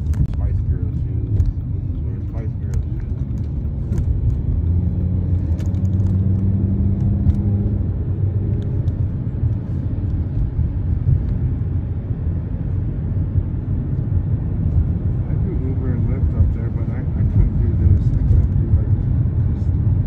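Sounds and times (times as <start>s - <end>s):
car engine and road noise: 0.0s - 20.0s
low hum: 0.0s - 20.0s.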